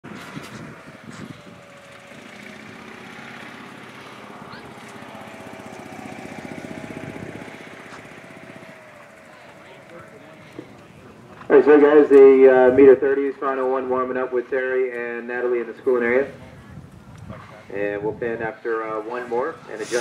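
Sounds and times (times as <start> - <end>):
small engine passing by: 0.0 - 13.7, 19.0 - 20.0.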